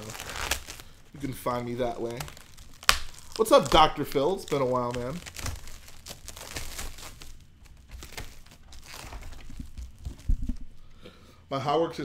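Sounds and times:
plastic crinkling and rustling: 0.0s - 11.1s.

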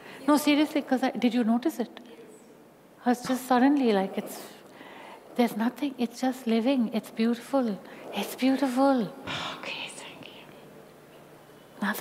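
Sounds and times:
person whispering: 9.2s - 10.7s.

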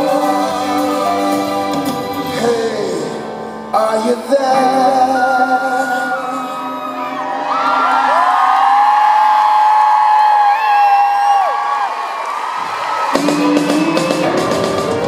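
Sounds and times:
pop band playing: 0.0s - 11.4s, 12.6s - 15.0s.

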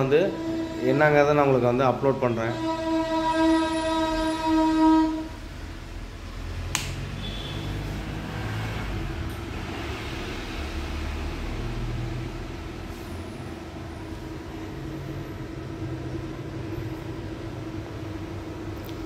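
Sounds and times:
held steady note from speakers: 0.0s - 6.2s
low rumble and hum: 0.0s - 19.0s.

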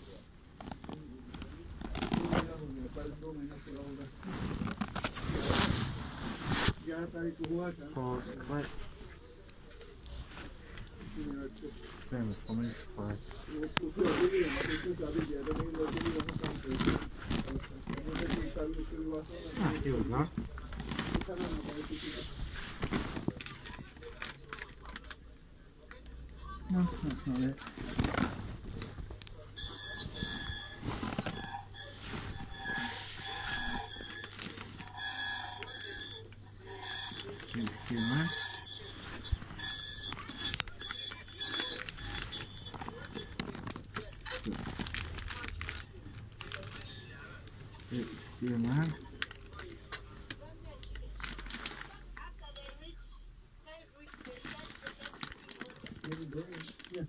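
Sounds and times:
muffled rustling: 0.0s - 24.2s, 26.9s - 34.9s
electronic alarm tone: 29.6s - 42.8s.

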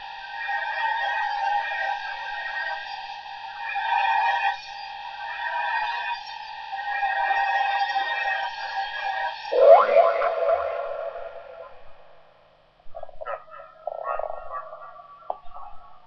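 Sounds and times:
rising electronic sweep: 9.5s - 12.2s
short electronic blips: 9.5s - 12.2s
held electronic tone: 9.5s - 12.3s.

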